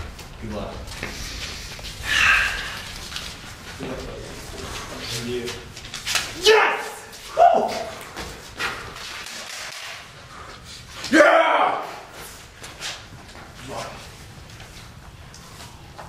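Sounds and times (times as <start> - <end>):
faint shuffling: 0.0 - 9.2, 11.8 - 16.0.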